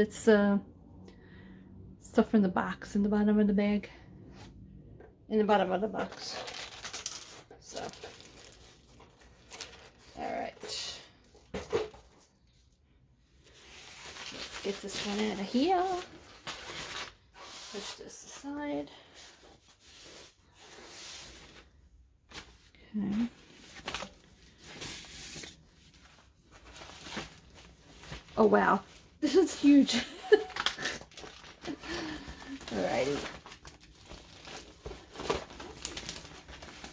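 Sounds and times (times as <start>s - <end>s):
plastic and canvas rustling: 6.0s - 12.3s, 13.4s - 21.7s, 22.3s - 36.9s
packaging rustling: 6.1s - 10.5s, 30.3s - 36.9s.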